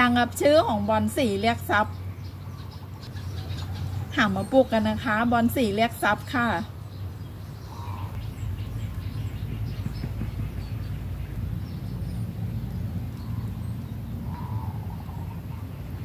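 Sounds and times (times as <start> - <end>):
steady low rumble: 0.0 - 16.0.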